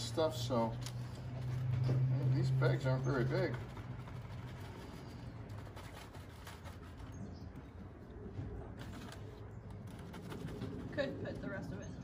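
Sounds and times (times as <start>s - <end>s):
pigeon cooing: 7.6s - 12.0s.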